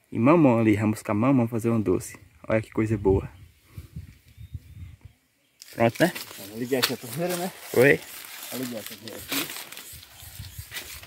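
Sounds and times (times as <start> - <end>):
dry leaves rustling underfoot: 5.6 - 11.0
man talking: 5.7 - 9.6.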